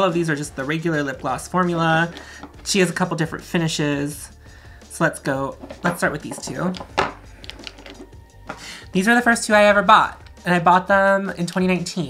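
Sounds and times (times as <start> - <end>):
plastic tubes clicking on wood: 5.6 - 8.1.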